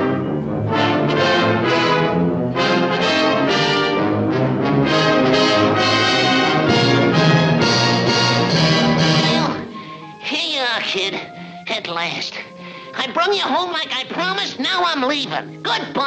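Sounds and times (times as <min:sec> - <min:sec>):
orchestral brass music: 0:00.0 - 0:10.2.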